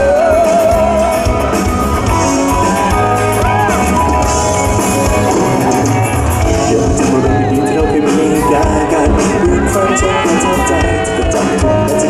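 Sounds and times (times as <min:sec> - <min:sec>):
man singing with vibrato: 0:00.0 - 0:02.2, 0:06.5 - 0:12.0
acoustic guitar and band: 0:00.0 - 0:12.0.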